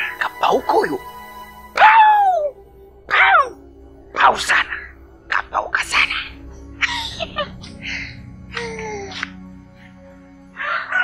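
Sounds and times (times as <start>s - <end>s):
quiet background music: 0.0s - 11.0s
rooster crowing: 10.5s - 11.0s.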